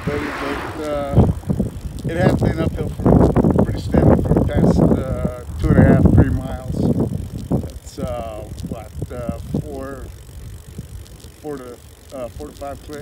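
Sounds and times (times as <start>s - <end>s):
man speaking: 0.0s - 1.3s
wind buffeting microphone: 0.0s - 13.0s.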